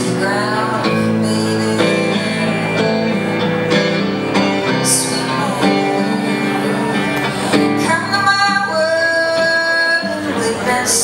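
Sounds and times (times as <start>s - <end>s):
woman singing: 0.0s - 3.6s, 4.3s - 11.0s
electric guitar: 0.0s - 11.0s.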